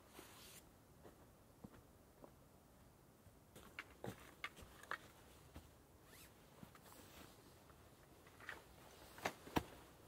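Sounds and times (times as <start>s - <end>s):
camping gear being handled: 3.6s - 10.0s
zipper being pulled: 6.0s - 6.3s.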